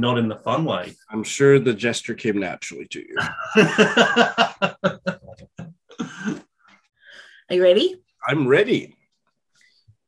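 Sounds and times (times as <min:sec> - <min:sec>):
person laughing: 0:03.2 - 0:06.4.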